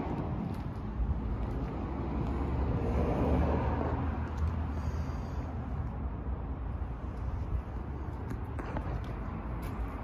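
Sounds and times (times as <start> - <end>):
motor vehicle rumbling: 0.0 - 10.0.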